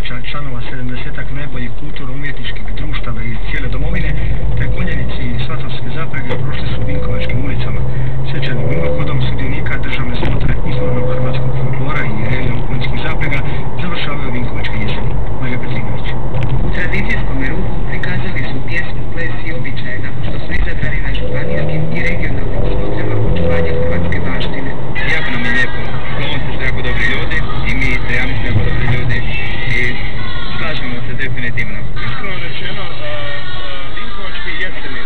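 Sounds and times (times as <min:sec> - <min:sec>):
engine and road rumble: 0:00.0 - 0:35.0
talking from car radio: 0:00.0 - 0:35.0.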